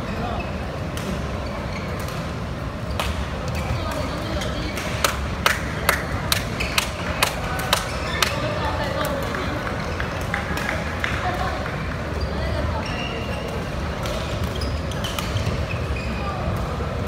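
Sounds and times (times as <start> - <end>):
murmur of voices: 0.0 - 17.0.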